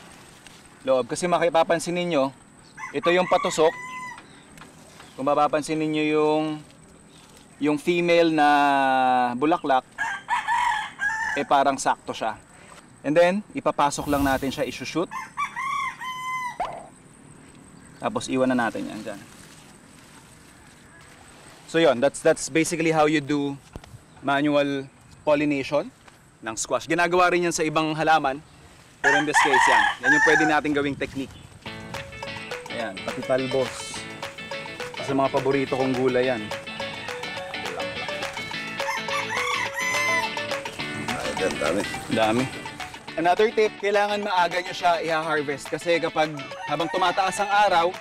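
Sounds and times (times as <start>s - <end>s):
rooster crowing: 2.7s - 4.4s, 9.9s - 11.7s, 15.0s - 16.9s, 29.0s - 30.7s, 36.6s - 37.8s, 38.6s - 40.6s, 46.4s - 47.9s
background music: 31.6s - 48.0s.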